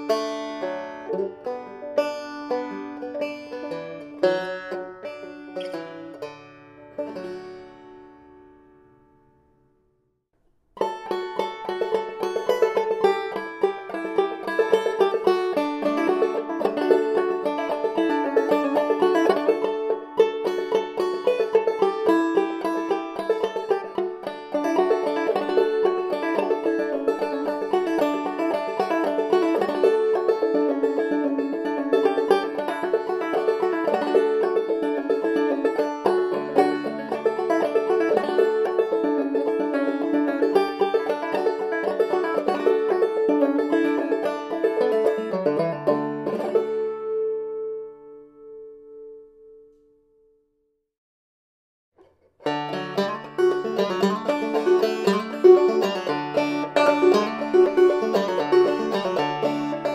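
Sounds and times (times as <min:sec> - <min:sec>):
banjo plucked notes: 0:00.0 - 0:09.7, 0:10.8 - 0:49.8, 0:52.0 - 0:59.9.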